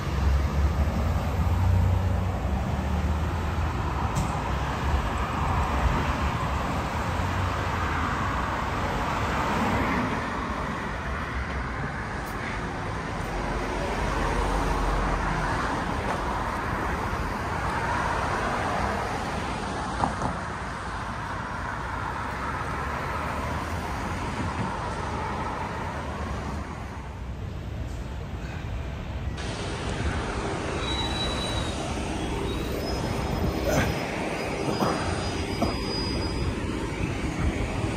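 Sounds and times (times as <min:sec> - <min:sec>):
cars driving past: 0:00.0 - 0:37.9.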